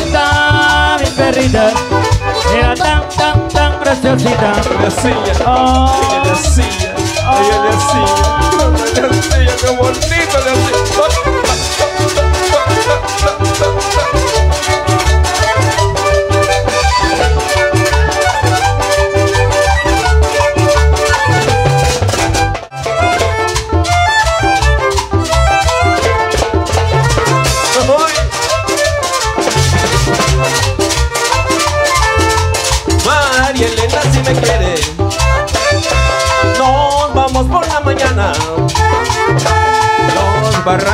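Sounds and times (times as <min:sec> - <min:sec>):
drums and percussion: 0:00.0 - 0:40.9
violin melody: 0:00.0 - 0:40.9.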